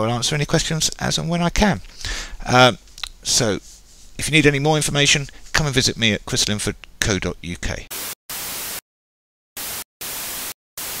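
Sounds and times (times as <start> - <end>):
static hiss bursts: 7.9 - 8.8, 9.6 - 11.0.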